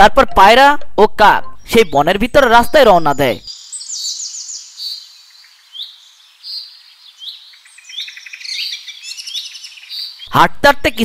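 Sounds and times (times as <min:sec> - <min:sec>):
songbirds chirping and trilling: 0:01.5 - 0:11.0.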